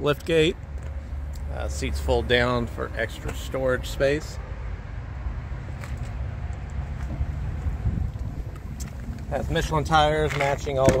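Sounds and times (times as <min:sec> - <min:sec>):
low outdoor rumble: 0:00.0 - 0:11.0
wind buffeting microphone: 0:06.7 - 0:10.3.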